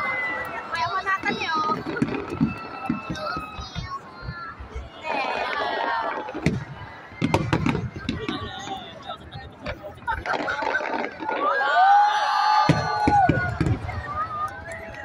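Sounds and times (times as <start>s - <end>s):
crowd chatter and exclamations: 0.0s - 15.0s
fireworks bangs and crackles: 0.0s - 15.0s.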